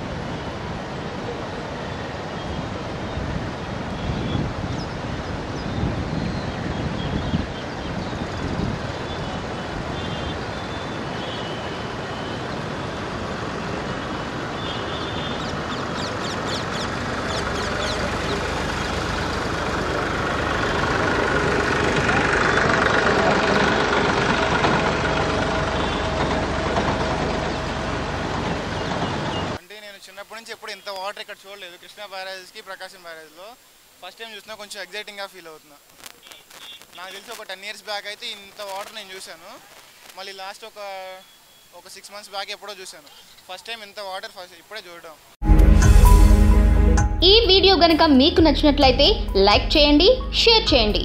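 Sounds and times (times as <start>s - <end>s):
road traffic: 0.0s - 29.6s
water rushing: 0.0s - 45.4s
vehicle engine: 11.8s - 29.6s
voices: 16.8s - 24.2s, 29.4s - 45.2s, 47.2s - 51.0s.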